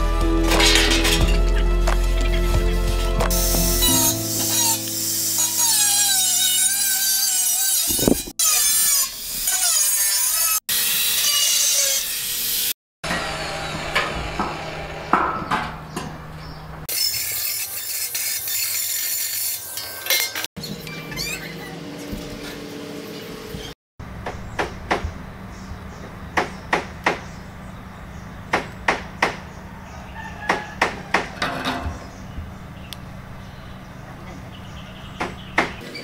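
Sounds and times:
angle grinder cutting steel: 0:03.2 - 0:15.9, 0:16.8 - 0:20.5.

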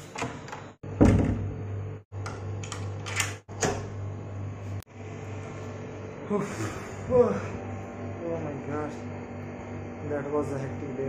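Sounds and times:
door handle and latch clicking: 0:02.6 - 0:03.8.

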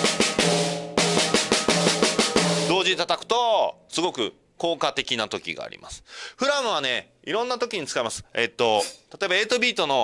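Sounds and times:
snare and tom hits: 0:00.0 - 0:02.8.

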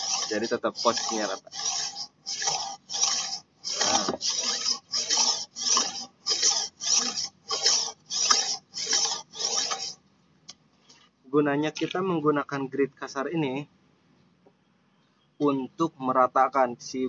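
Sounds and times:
blade scraping on whetstone: 0:00.0 - 0:10.0.

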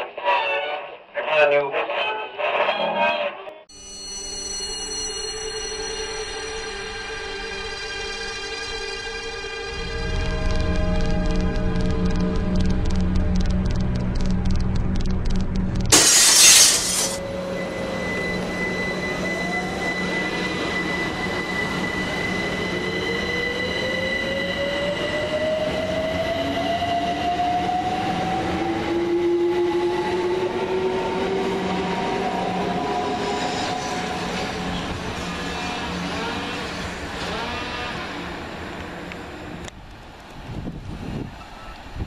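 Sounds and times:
electric train motors whining: 0:15.9 - 0:24.9.

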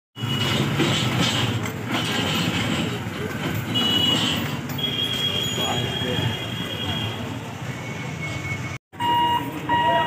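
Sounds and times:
short high-pitched beep: 0:07.8 - 0:10.0.

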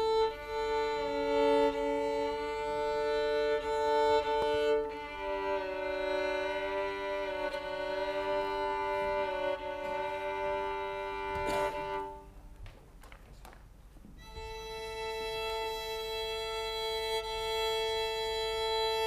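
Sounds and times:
violin long held notes: 0:00.0 - 0:12.4, 0:14.2 - 0:19.0.

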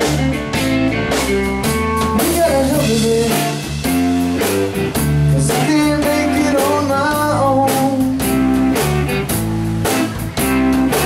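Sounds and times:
bass: 0:00.0 - 0:11.0
drum kit steady beat: 0:00.0 - 0:11.0
electric guitar lines: 0:00.0 - 0:11.0.

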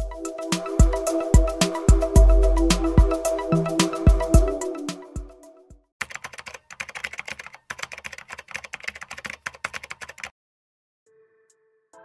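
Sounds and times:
computer keyboard typing: 0:06.0 - 0:10.3.

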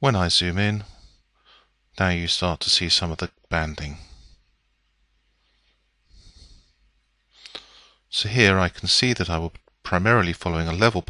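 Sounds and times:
faint breath drawn in: 0:00.8 - 0:01.8, 0:05.4 - 0:08.1.

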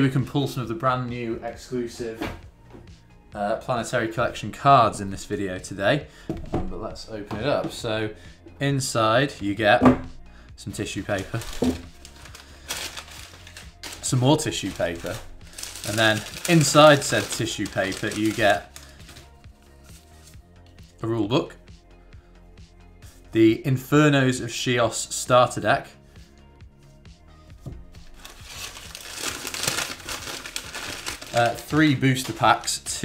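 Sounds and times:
tissue paper rustling and crinkling: 0:11.0 - 0:20.4, 0:27.9 - 0:32.9.

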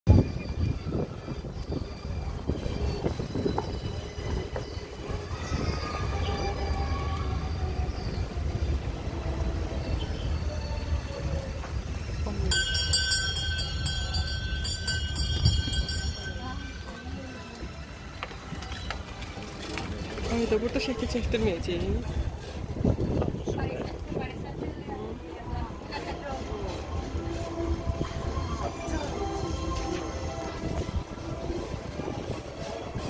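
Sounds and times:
cart rumbling and rattling: 0:00.1 - 0:33.0.

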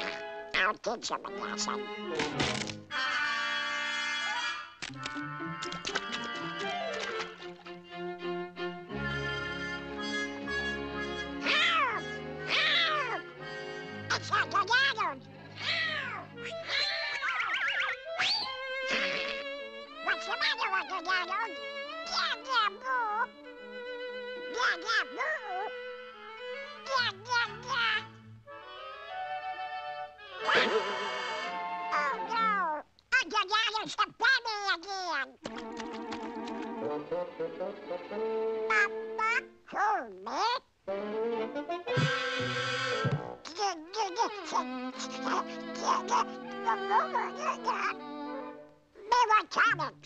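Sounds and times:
orchestral background music: 0:01.3 - 0:04.2, 0:04.8 - 0:16.7, 0:18.0 - 0:32.6, 0:35.5 - 0:39.6, 0:40.9 - 0:43.4, 0:44.0 - 0:48.8
cartoon duck voice cries: 0:11.4 - 0:13.2, 0:14.1 - 0:19.4, 0:38.7 - 0:40.6, 0:42.0 - 0:48.0.

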